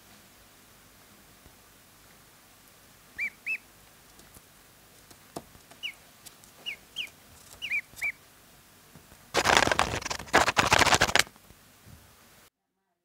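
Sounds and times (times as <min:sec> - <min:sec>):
ducklings peeping: 0:03.2 - 0:03.7, 0:05.8 - 0:06.0, 0:06.6 - 0:08.2.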